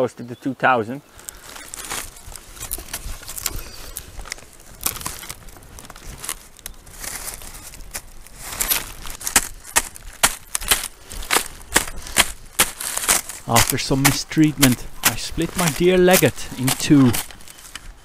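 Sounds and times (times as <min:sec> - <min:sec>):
dry reed stems rustling: 0:01.1 - 0:18.0.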